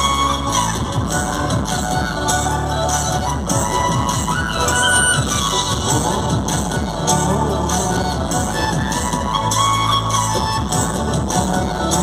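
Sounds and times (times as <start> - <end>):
live band music through pa: 0.0 - 12.0.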